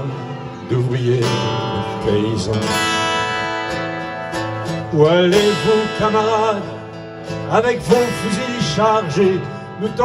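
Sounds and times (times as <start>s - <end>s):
man singing: 0.0s - 3.5s, 4.6s - 10.0s
acoustic guitars strumming chords: 0.0s - 10.0s.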